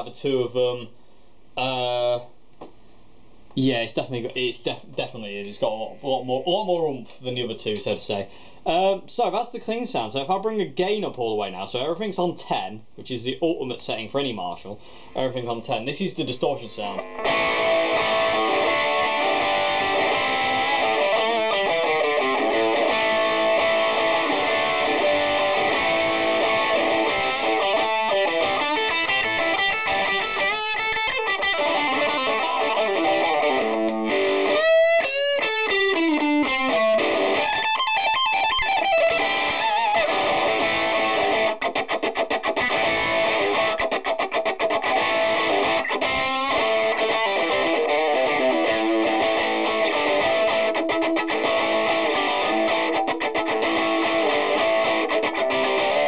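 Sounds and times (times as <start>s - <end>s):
distorted electric guitar: 16.8s - 56.0s.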